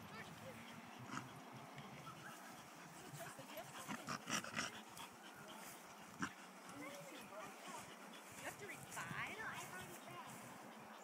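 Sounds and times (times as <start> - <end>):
dogs play noises: 0.0 - 11.0.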